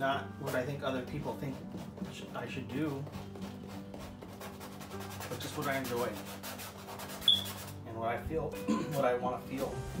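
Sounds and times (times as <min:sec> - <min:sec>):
paintbrush scrubbing canvas: 0:00.4 - 0:07.8
high squeak: 0:07.2 - 0:07.6.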